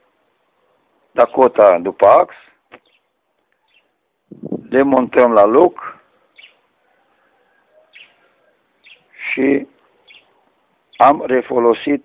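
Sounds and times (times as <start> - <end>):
small bird chirping: 2.7 - 4.0, 6.2 - 9.2, 9.8 - 11.2.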